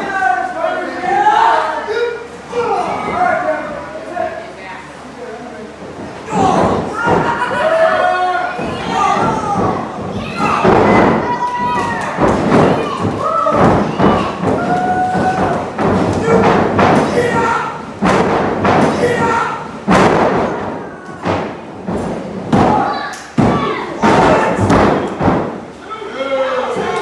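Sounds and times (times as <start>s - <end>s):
audience shouting: 6.2s - 17.9s, 18.8s - 19.7s, 25.8s - 27.0s
bodies thudding on wrestling ring: 8.6s - 25.6s.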